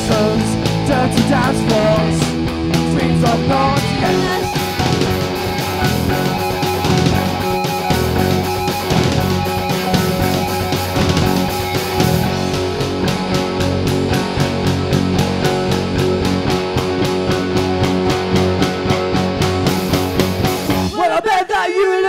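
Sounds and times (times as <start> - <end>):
electric guitar: 0.0 - 20.9
bass guitar: 0.0 - 21.0
drums keeping a steady beat: 0.0 - 21.0
keyboard: 0.0 - 21.0.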